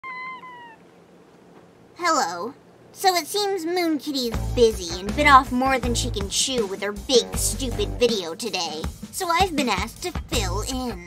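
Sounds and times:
cat meowing: 0:00.0 - 0:00.9.

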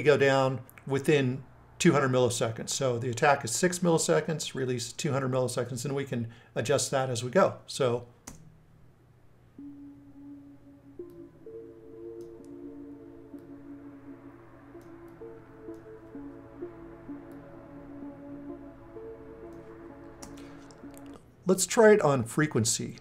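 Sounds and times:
synth sustained notes: 0:09.6 - 0:21.2.

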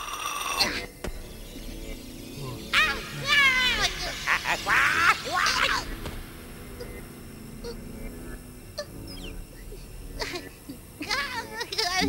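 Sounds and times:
cartoon character high-pitched cries: 0:02.8 - 0:05.9.

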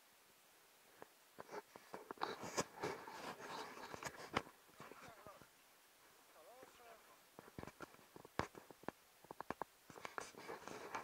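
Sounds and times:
faint voice: 0:04.8 - 0:05.5.

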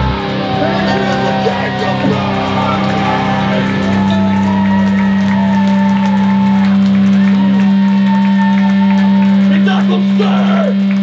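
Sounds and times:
crowd shouting: 0:00.0 - 0:10.8
electric guitars holding low note: 0:00.0 - 0:11.0.

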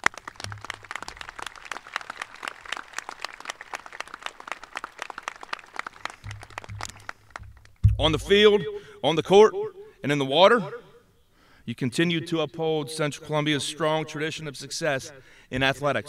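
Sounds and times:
crowd applauding: 0:00.0 - 0:07.8.

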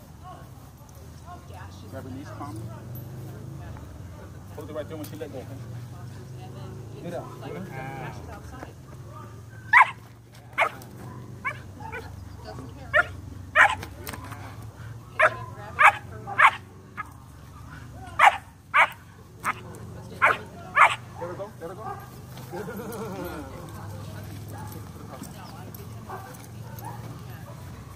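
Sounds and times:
puppy barking: 0:09.4 - 0:22.2, 0:26.0 - 0:27.9.

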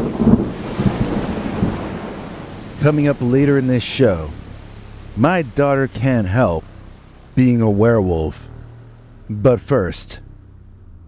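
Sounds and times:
steady hiss: 0:00.0 - 0:10.6
thunder rumbling: 0:00.0 - 0:11.0.

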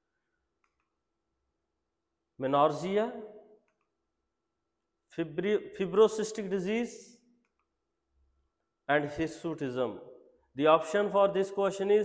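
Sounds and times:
man speaking: 0:02.4 - 0:03.3, 0:05.1 - 0:07.2, 0:08.9 - 0:12.0.

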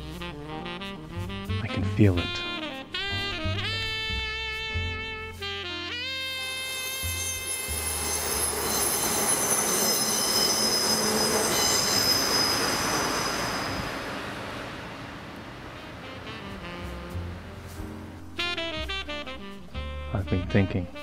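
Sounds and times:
wheels squealing: 0:06.2 - 0:17.9
train wheels on rails: 0:06.6 - 0:17.0.

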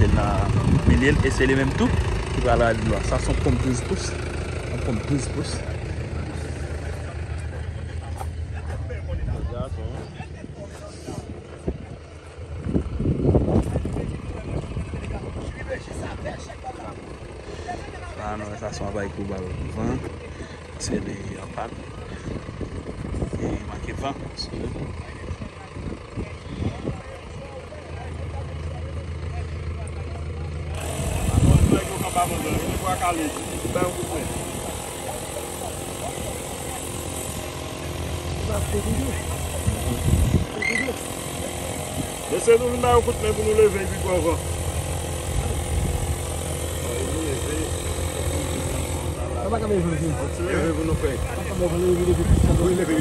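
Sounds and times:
electric tyre inflator humming: 0:00.0 - 0:07.5, 0:30.6 - 0:53.0
engine running with low rumble: 0:00.0 - 0:53.0
faint voices talking: 0:00.0 - 0:53.0.

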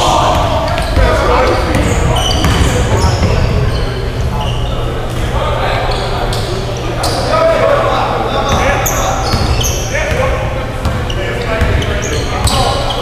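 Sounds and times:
players calling out: 0:00.0 - 0:13.0
sneakers squeaking: 0:00.0 - 0:13.0
basketball bouncing: 0:01.7 - 0:03.6, 0:08.5 - 0:12.6.

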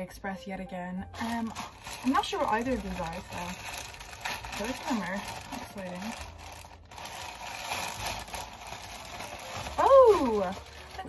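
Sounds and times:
plastic packaging crinkling: 0:01.1 - 0:11.0.

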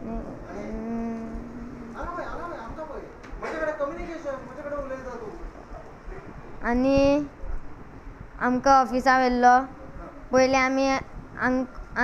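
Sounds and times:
boy humming mmm: 0:00.0 - 0:02.0.

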